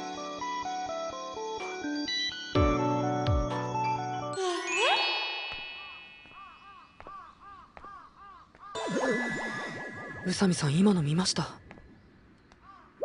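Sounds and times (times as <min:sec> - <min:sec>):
music: 0:00.0 - 0:05.3
bright chime sting: 0:04.4 - 0:06.7, 0:08.8 - 0:10.4.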